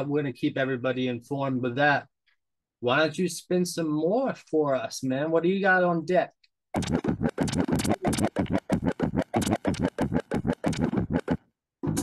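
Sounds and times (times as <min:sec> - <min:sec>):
vinyl record scratching: 0:06.8 - 0:12.0
music playing: 0:10.8 - 0:12.0.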